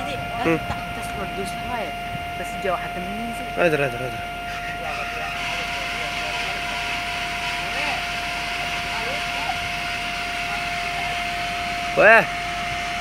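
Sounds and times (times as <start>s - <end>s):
excavator engine with high whine: 0.0s - 13.0s.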